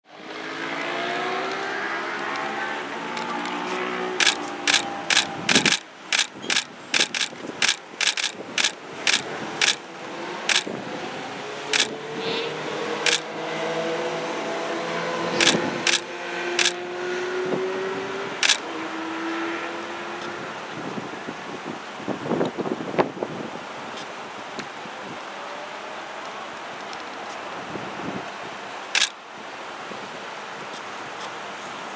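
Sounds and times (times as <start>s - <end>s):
street traffic: 0.1s - 31.9s
vehicle engine passing: 0.2s - 20.6s
camera shutter clicks: 4.2s - 9.8s, 10.5s - 10.7s, 11.8s - 12.0s, 15.4s - 16.8s, 18.4s - 18.6s, 29.0s - 29.2s.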